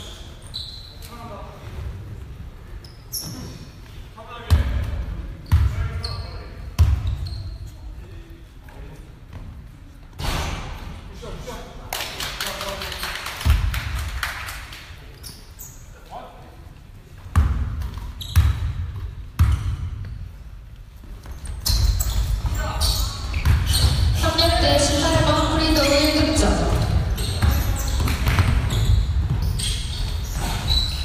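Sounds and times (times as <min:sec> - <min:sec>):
basketball bouncing: 0:17.3 - 0:20.1, 0:23.3 - 0:25.4, 0:26.0 - 0:30.6.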